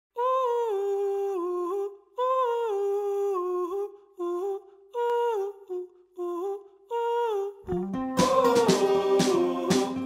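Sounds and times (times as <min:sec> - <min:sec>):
wordless high vocal line: 0:00.2 - 0:10.0.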